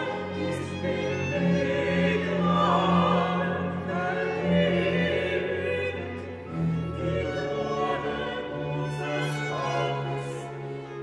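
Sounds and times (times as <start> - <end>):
choir singing cantata: 0.0 - 11.0.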